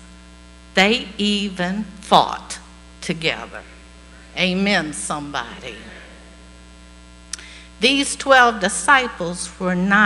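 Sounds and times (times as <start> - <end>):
electrical mains hum: 0.0 - 10.0
woman speaking: 0.8 - 6.2, 7.8 - 10.0.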